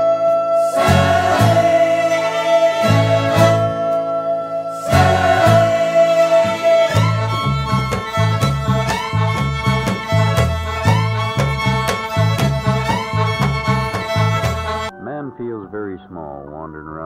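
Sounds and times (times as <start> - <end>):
fiddle with sliding notes: 0.0 - 16.3
guitar: 0.0 - 17.0
bouncing bass line: 2.8 - 15.4
steady drum beat: 6.9 - 14.9.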